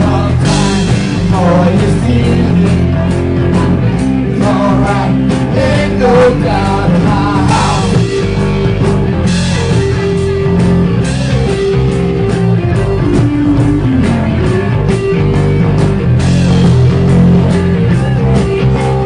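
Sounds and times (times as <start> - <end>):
bass guitar: 0.0 - 19.0
drum kit beat: 0.0 - 19.0
electric guitar: 0.0 - 19.0.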